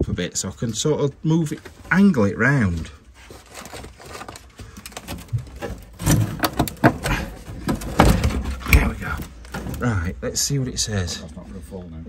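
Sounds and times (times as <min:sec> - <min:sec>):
wooden box knocking and scraping: 0:04.2 - 0:10.0.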